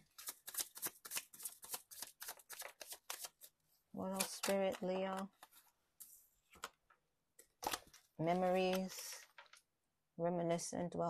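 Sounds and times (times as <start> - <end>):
cards being shuffled: 0.0 - 3.5, 4.1 - 6.8.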